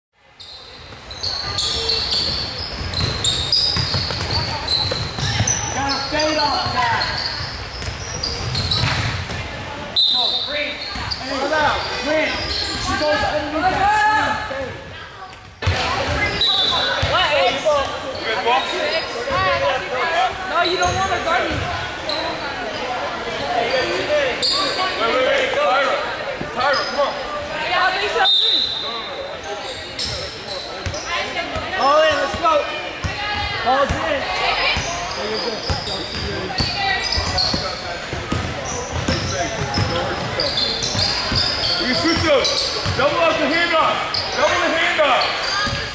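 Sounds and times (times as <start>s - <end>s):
sneaker squeaks on court: 0.4s - 9.4s, 10.2s - 13.8s, 28.6s - 32.4s, 34.6s - 44.6s, 45.2s - 45.9s
basketball bouncing: 2.2s - 5.6s, 7.8s - 9.5s, 35.7s - 40.3s, 42.1s - 43.1s.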